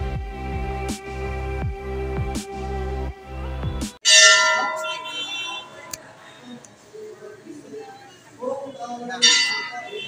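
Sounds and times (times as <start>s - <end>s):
background music: 0.0s - 4.0s
metal temple bell ringing: 4.1s - 5.3s, 9.2s - 9.9s.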